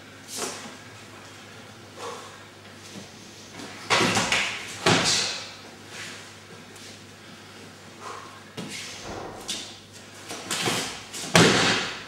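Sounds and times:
loud thump on mat: 9.0s - 9.4s.

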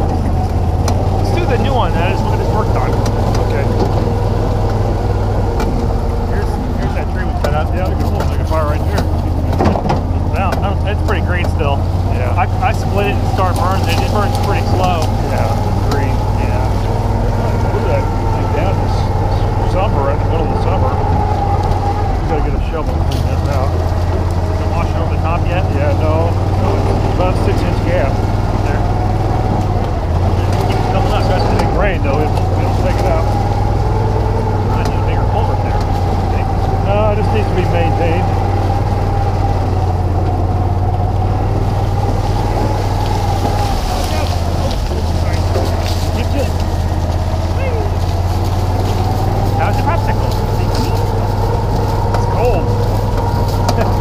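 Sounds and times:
knocks and rattles: 0.0s - 54.0s
utility vehicle engine running: 0.0s - 54.0s.

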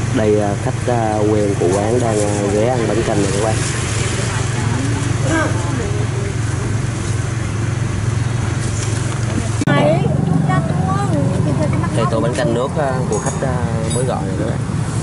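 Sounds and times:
voices talking: 0.0s - 14.7s
traffic engine hum: 0.0s - 15.0s
background chatter: 1.1s - 14.6s.

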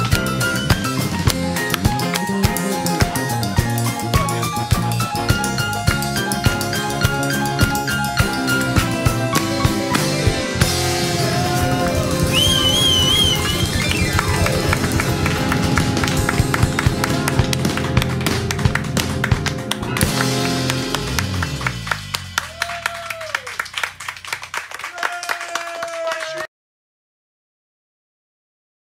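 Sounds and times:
people clapping: 0.0s - 3.2s, 10.8s - 26.5s
acoustic band playing: 0.0s - 23.0s.

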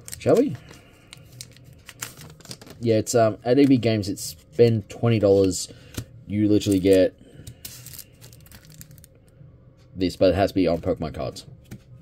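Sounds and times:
plastic bag crinkling: 7.7s - 9.1s.

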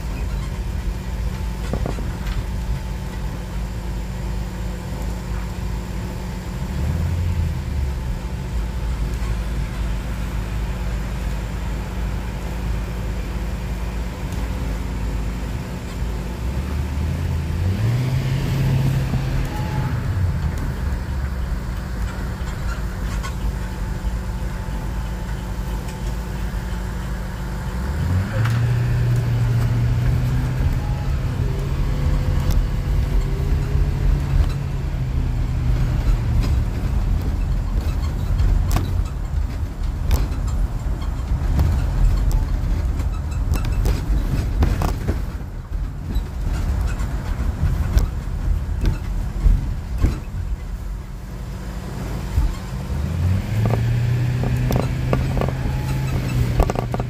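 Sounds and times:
road rumble: 0.0s - 57.0s
vehicle engine accelerating: 0.0s - 57.0s.

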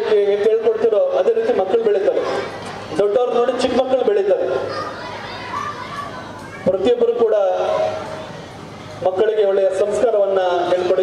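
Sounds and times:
man's amplified voice: 0.0s - 4.7s, 6.6s - 8.0s, 9.0s - 11.0s
children chattering and playing: 0.0s - 11.0s.

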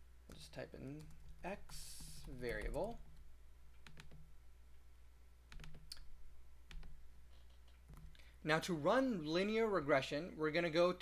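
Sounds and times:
steady low hum: 0.0s - 9.9s
mouse and keyboard clicks: 3.8s - 4.2s, 5.5s - 6.1s.

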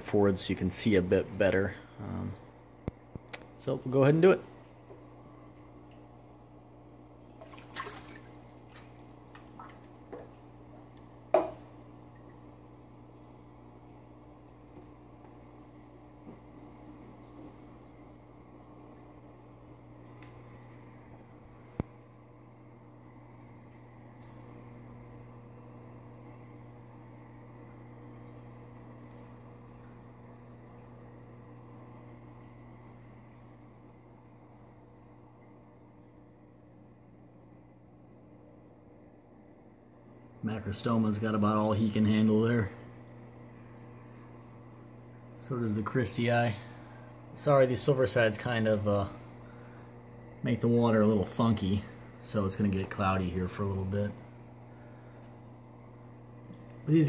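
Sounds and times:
aquarium equipment humming: 0.0s - 57.0s.

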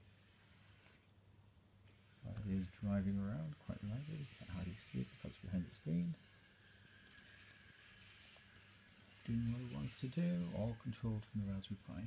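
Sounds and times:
high whine of small motors: 0.0s - 1.1s, 1.8s - 12.0s
low hiss: 0.0s - 12.0s
person speaking: 2.2s - 6.4s, 9.1s - 12.0s.

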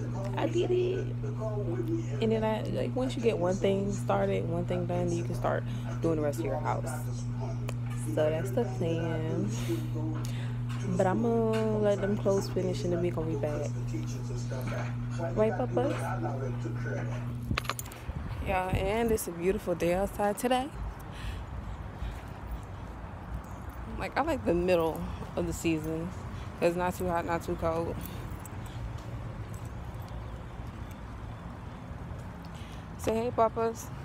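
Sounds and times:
low outdoor rumble: 0.0s - 34.0s
steady low hum: 0.0s - 34.0s
sharp jingling clicks: 17.4s - 18.1s, 22.1s - 24.0s, 27.6s - 32.6s.

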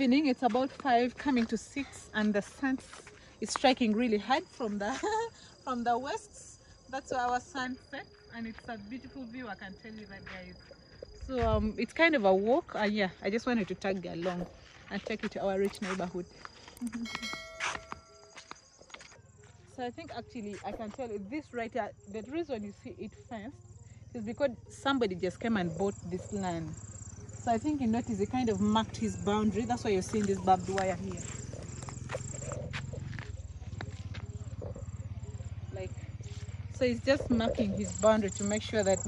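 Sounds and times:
insects chirping: 0.0s - 39.0s
bell-like notification chime: 17.0s - 18.4s.

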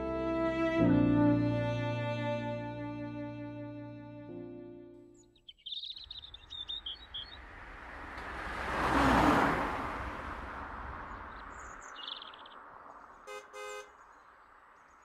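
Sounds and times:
small birds chirping: 5.1s - 8.2s, 10.8s - 15.0s
car passing by: 6.2s - 15.0s
car horn short beeps: 13.3s - 13.9s.

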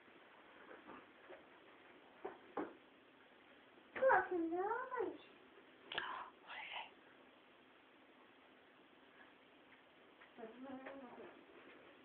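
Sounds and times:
person whispering: 5.9s - 7.0s.

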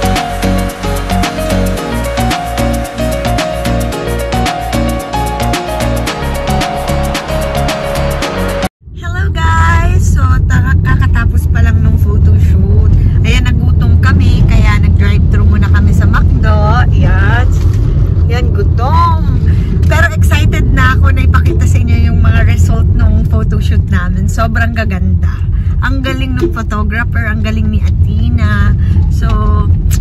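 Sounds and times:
car cabin rumble: 9.0s - 30.0s.

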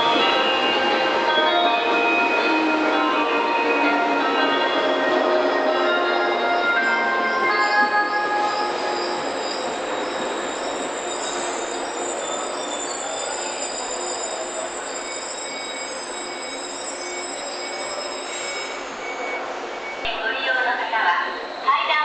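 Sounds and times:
train wheels and brakes squealing: 0.0s - 22.0s.

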